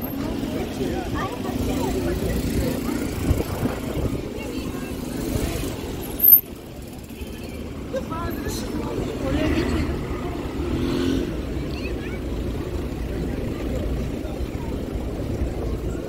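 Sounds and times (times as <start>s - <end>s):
many people talking: 0.0s - 16.0s
passing traffic rumble: 0.0s - 16.0s.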